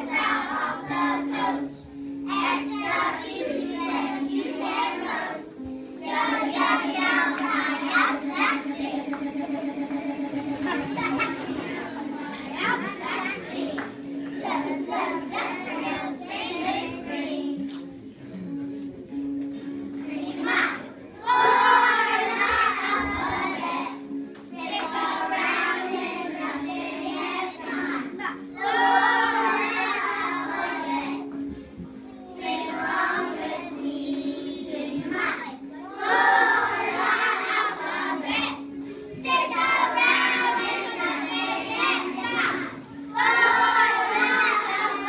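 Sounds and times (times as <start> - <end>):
children singing: 0.0 - 17.8, 19.8 - 45.0
steady low tone: 6.5 - 13.5
children's voices in chorus: 39.3 - 45.0.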